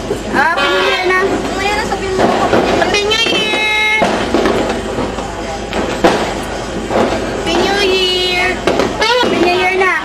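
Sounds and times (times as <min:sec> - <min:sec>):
people talking: 0:00.3 - 0:04.1, 0:07.4 - 0:10.0.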